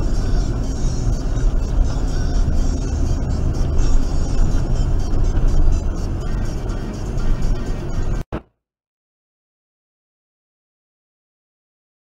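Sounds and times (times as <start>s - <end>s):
music playing in car: 0.0s - 8.3s
car road and engine noise: 0.0s - 8.4s.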